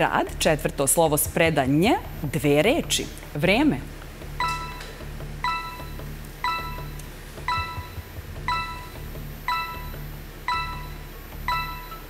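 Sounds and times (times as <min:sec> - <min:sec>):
low steady music bed: 0:00.0 - 0:12.0
bell-like timer ping: 0:05.5 - 0:12.0.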